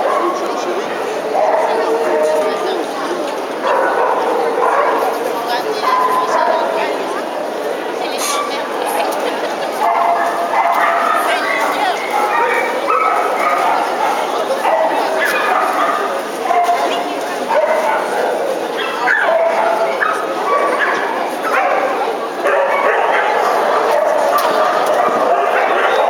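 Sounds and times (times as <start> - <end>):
crowd chatter in a hall: 0.0 - 26.0
small dogs barking: 3.6 - 6.9, 9.8 - 26.0.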